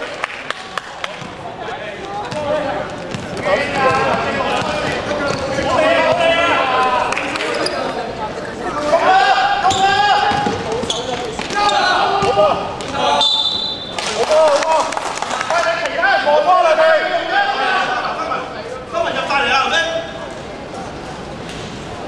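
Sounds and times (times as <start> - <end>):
players' voices calling out: 1.1 - 14.9
basketball bouncing on court: 3.1 - 6.3, 9.7 - 11.6.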